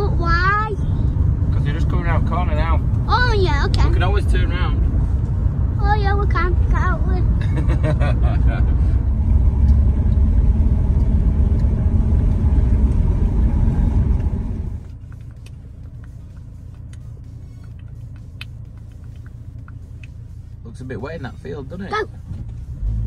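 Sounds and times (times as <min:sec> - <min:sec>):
vehicle cabin road rumble: 0:00.0 - 0:23.0.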